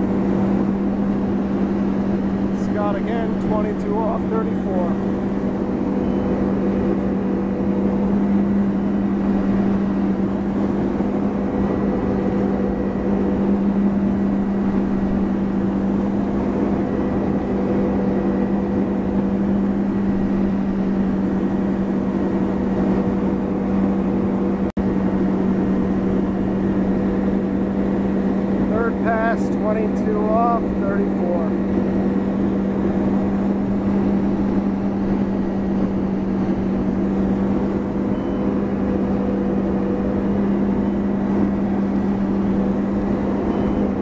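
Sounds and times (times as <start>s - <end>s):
boat engine running: 0.0s - 44.0s
rush of boat wake: 0.0s - 44.0s.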